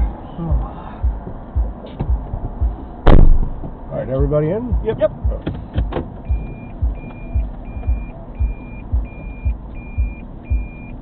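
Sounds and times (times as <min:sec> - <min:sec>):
low dull thumps in car: 0:00.0 - 0:11.0.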